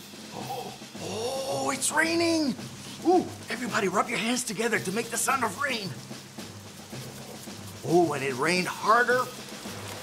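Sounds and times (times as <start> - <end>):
quiet music with low tone: 0.0 - 10.0
hands rubbing together: 2.0 - 10.0.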